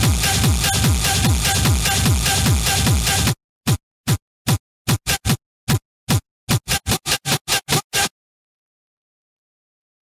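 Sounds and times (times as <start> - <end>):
techno kick drum hits: 0.0 - 3.4.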